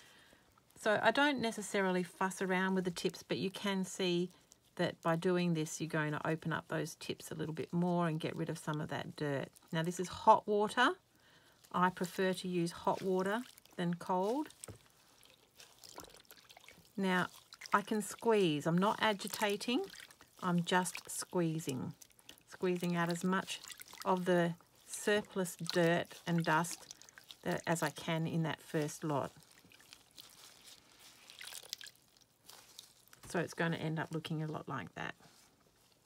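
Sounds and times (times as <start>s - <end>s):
water trickling and sloshing: 0.0s - 36.0s.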